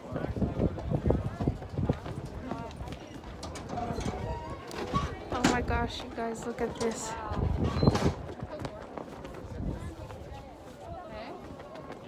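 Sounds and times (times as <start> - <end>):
people's voices: 0.0 - 12.0
footsteps on wooden boardwalk: 0.1 - 4.0, 4.6 - 12.0.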